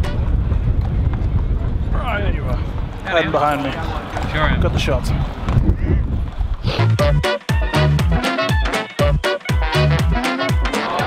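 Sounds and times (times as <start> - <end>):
music: 0.0 - 0.3, 6.7 - 11.0
wind buffeting microphone: 0.0 - 6.9.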